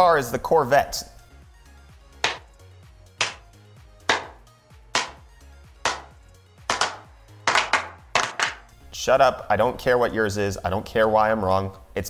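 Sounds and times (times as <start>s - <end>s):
slow hand claps: 2.2s - 2.5s, 3.2s - 8.6s.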